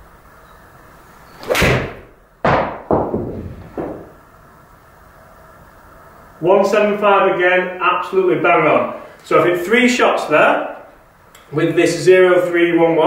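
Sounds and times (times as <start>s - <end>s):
golf club swing whoosh: 1.3s - 2.1s
golf club striking ball: 1.4s - 4.2s
ball knocking on screen: 1.6s - 4.2s.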